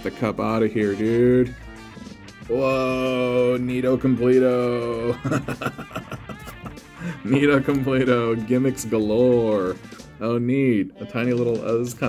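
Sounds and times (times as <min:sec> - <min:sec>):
guitar music: 0:00.0 - 0:12.0
man laughing: 0:04.8 - 0:07.4.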